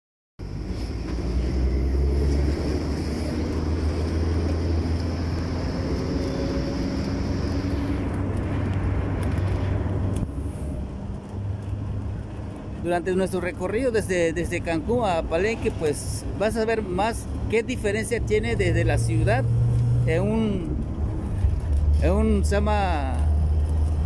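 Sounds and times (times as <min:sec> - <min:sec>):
vehicle engine drone: 0:00.4 - 0:24.0.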